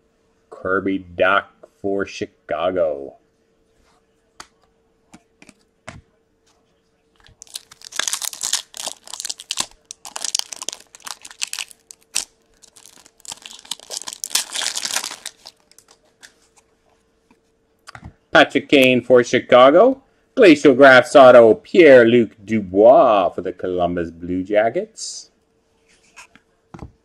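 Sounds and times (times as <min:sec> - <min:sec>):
wrapper crinkling and tearing: 0:07.2 - 0:16.0.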